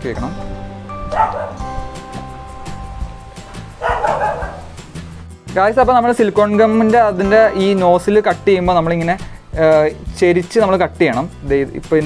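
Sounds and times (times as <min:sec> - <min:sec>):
background music with steady beat: 0:00.0 - 0:12.0
dog barking: 0:01.1 - 0:01.6, 0:03.7 - 0:04.8.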